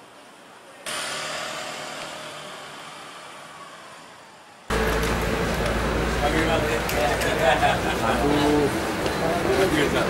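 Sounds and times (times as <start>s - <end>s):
outdoor traffic noise: 0.0s - 10.0s
motor vehicle engine running: 0.9s - 9.2s.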